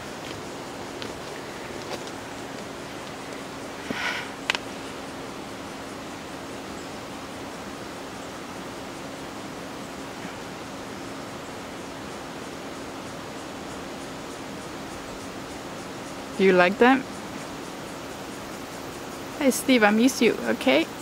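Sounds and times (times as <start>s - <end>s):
steady rushing noise: 0.0s - 14.0s.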